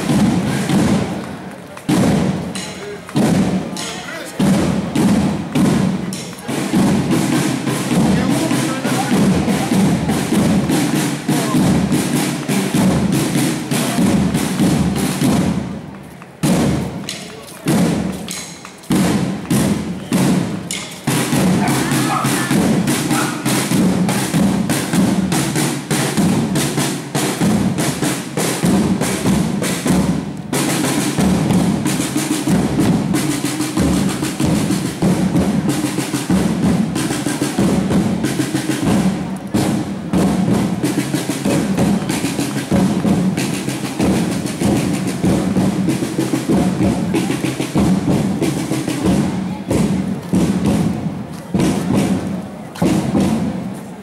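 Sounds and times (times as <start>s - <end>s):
marching drums: 0.0s - 54.0s.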